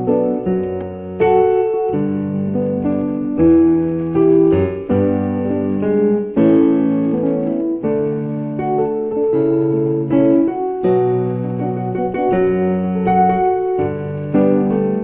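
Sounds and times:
keyboard piano chords: 0:00.0 - 0:15.0.

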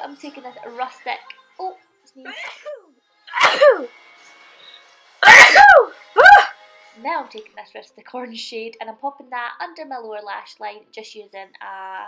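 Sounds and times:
woman sneezing: 0:03.3 - 0:03.9, 0:05.2 - 0:06.5.

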